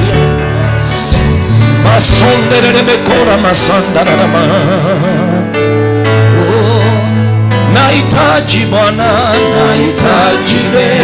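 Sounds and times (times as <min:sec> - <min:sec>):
band playing sustained chords: 0:00.0 - 0:04.0
gospel singing: 0:00.0 - 0:05.4, 0:07.7 - 0:11.0.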